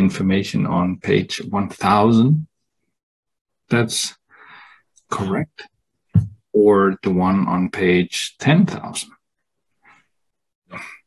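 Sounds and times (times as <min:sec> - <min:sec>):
faint breath: 0:04.3 - 0:04.9.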